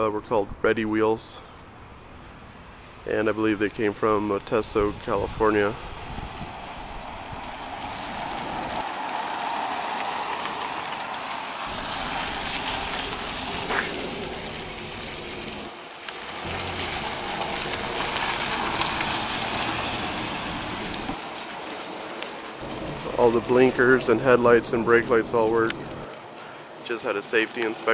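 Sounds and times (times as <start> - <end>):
minivan driving past: 5.7 - 26.4.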